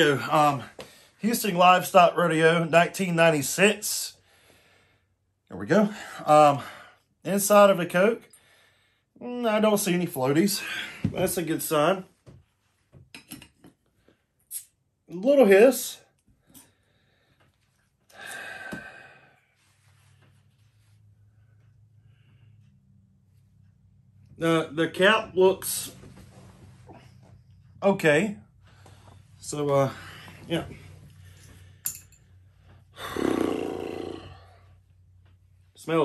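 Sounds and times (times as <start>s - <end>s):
man groaning: 33.0s - 34.6s.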